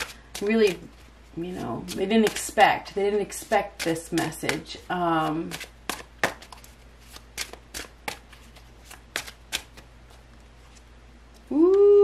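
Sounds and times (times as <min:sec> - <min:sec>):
cards shuffling and slapping: 0:03.4 - 0:11.4.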